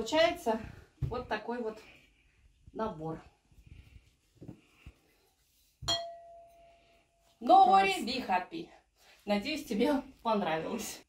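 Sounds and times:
jar clink with ringing tone: 0:05.9 - 0:06.8.

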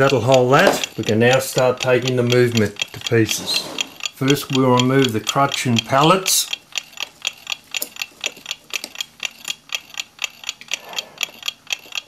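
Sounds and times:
mechanical clock ticking: 0:00.0 - 0:12.0.

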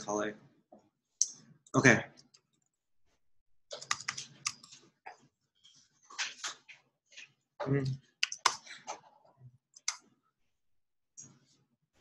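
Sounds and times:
computer keyboard key clicks: 0:03.8 - 0:04.7.

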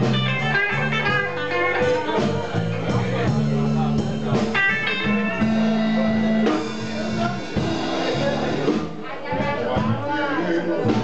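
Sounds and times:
electric guitar: 0:00.0 - 0:08.9
drums: 0:00.0 - 0:11.0.

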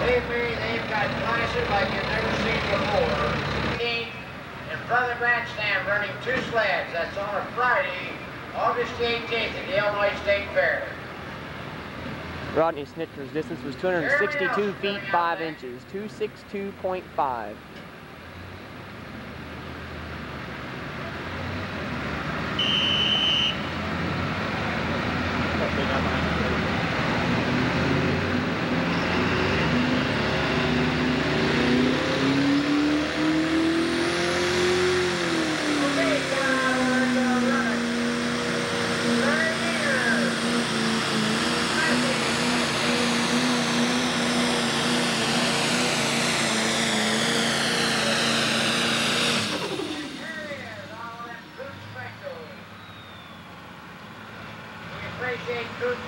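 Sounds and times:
diesel engine at full power: 0:00.0 - 0:56.0
high turbo whine: 0:00.0 - 0:56.0.

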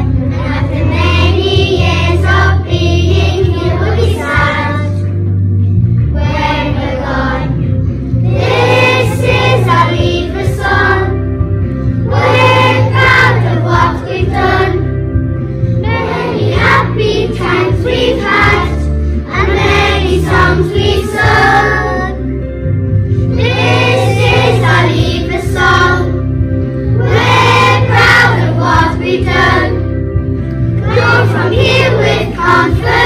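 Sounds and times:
children singing: 0:00.0 - 0:05.0, 0:08.3 - 0:11.2, 0:12.1 - 0:14.8, 0:15.8 - 0:22.2, 0:23.4 - 0:26.2, 0:27.0 - 0:29.8, 0:30.8 - 0:33.0
musical backing track with bass: 0:00.0 - 0:33.0.

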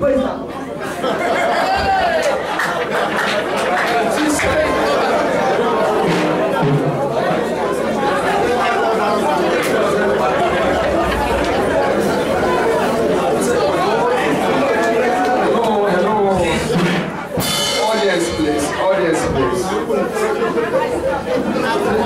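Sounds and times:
voices chattering in a hall: 0:00.0 - 0:22.0
man talking into a microphone: 0:17.8 - 0:19.9.

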